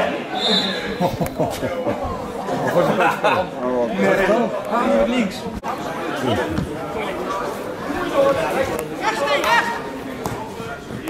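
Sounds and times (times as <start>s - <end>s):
spectators chatting: 0.0s - 11.0s.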